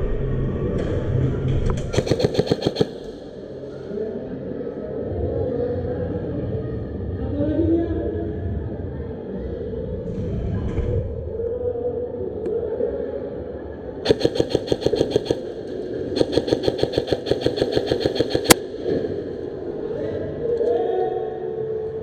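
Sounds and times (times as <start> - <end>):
airsoft rifle full-auto bursts: 1.9 - 3.3, 14.0 - 15.6, 16.2 - 18.6.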